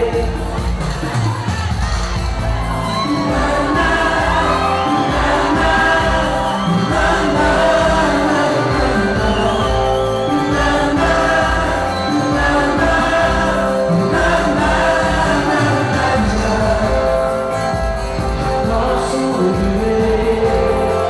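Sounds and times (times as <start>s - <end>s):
man singing into a microphone: 0.0s - 1.1s, 3.0s - 21.0s
live band with guitars: 0.0s - 21.0s.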